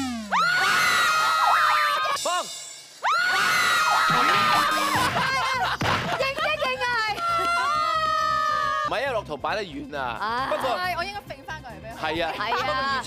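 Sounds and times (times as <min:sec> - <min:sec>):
women screaming: 0:00.2 - 0:02.2, 0:03.0 - 0:05.8, 0:06.6 - 0:08.9
excited voices: 0:03.0 - 0:08.9
laughter: 0:04.1 - 0:06.7, 0:12.3 - 0:13.0.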